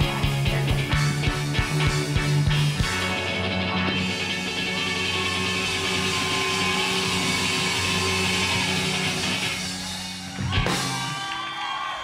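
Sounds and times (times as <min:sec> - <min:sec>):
electro-rock band playing: 0:00.0 - 0:12.0.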